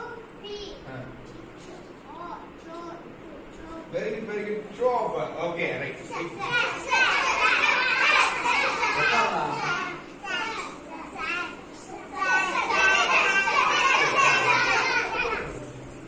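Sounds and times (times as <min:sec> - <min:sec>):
children calling out: 0:06.1 - 0:16.0.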